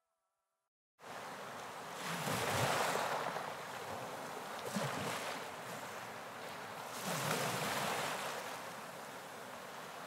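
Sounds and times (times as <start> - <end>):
rushing waves and wind: 1.0 - 10.0.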